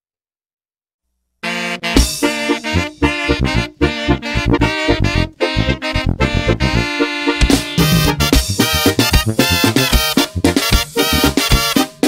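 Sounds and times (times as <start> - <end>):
brass band playing: 1.4 - 12.0.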